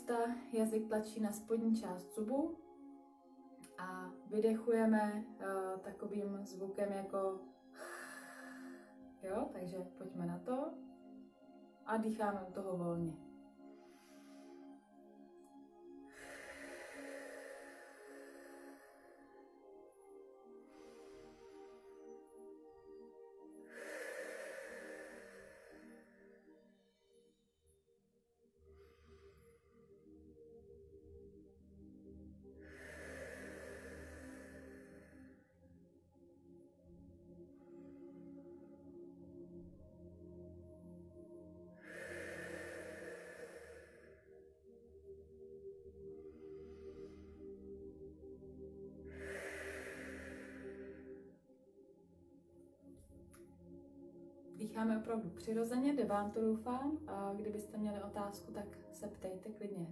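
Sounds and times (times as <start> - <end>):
soft new-age music: 0.0 - 59.9
breathy out-breath: 7.7 - 9.2, 13.4 - 27.2, 28.7 - 30.4, 31.4 - 35.7, 37.4 - 39.8, 40.6 - 51.6
person exhaling with hiss: 16.1 - 19.2, 23.7 - 26.2, 32.6 - 35.4, 41.8 - 44.2, 49.1 - 51.2.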